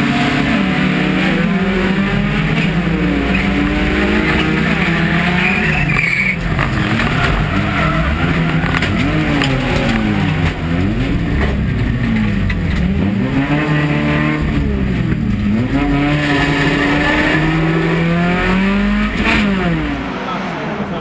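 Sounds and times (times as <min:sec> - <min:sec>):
car engine revving: 0:00.0 - 0:21.0
tyres squealing: 0:03.2 - 0:12.6.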